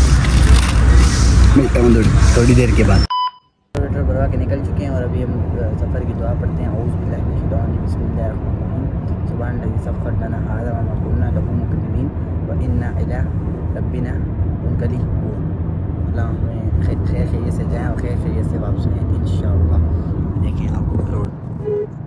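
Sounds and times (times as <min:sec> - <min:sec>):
road and engine rumble: 0:00.0 - 0:03.1, 0:03.8 - 0:22.0.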